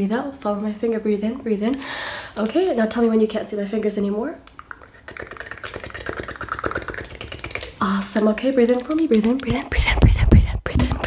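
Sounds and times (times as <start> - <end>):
crisp clicks and crackles: 1.7 - 3.1, 5.5 - 10.1.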